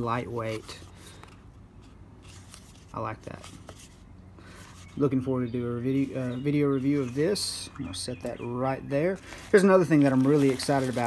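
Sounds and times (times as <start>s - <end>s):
cardboard box rustling and scraping: 9.3s - 11.0s.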